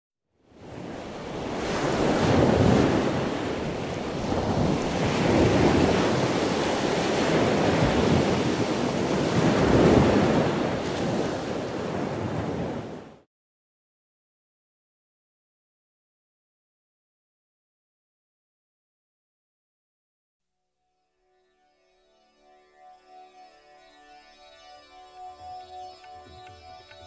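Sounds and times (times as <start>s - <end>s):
ocean waves breaking: 0.6s - 13.2s.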